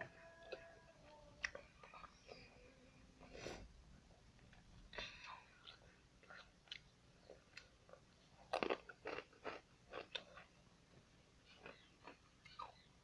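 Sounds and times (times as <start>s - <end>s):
person chewing crunchy food: 5.0s - 10.6s, 11.4s - 12.9s.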